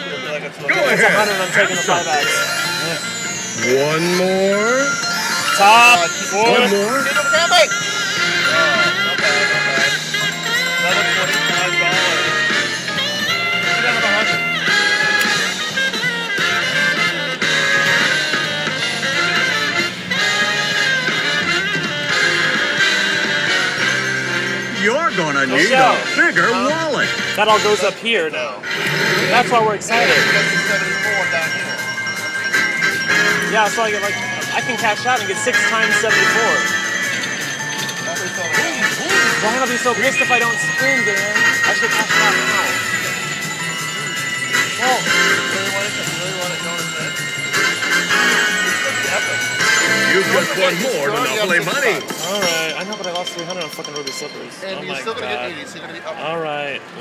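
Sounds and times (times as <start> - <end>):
slot machine bonus music: 0.0 - 55.5
slot machine reels spinning: 0.8 - 15.8, 28.6 - 54.3.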